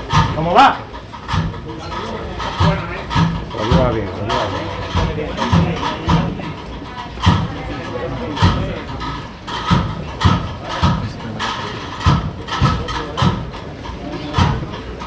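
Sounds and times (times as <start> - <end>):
crowd murmur: 0.0 - 15.0.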